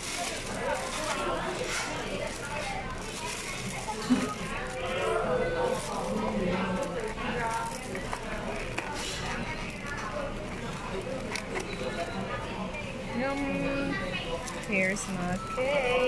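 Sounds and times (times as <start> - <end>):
chatter of many voices: 0.0 - 16.0.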